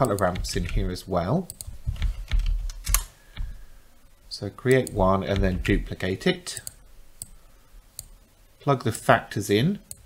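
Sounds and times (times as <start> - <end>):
computer keyboard keystrokes: 0.0 - 0.9, 1.5 - 3.5.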